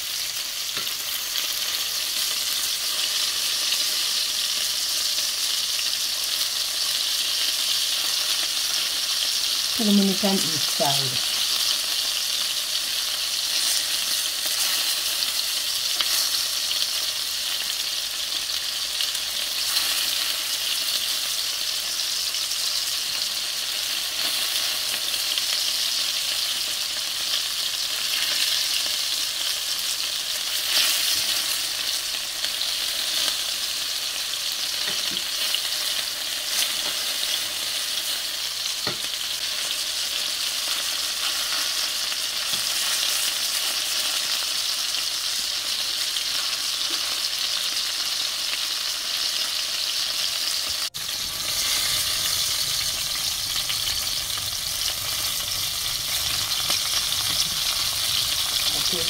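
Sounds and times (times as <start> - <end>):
meatballs sizzling in pan: 0.0 - 59.0.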